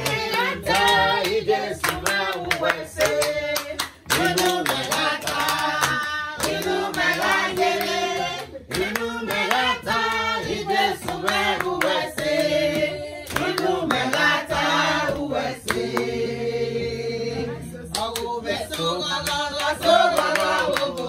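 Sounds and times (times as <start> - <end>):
hands clapping in rhythm: 0.0 - 16.6, 17.8 - 21.0
group of people singing: 0.0 - 21.0.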